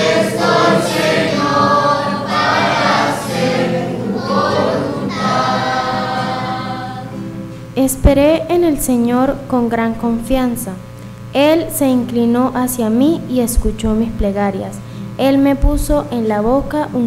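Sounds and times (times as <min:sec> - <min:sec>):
choir singing slow refrain: 0:00.0 - 0:07.6.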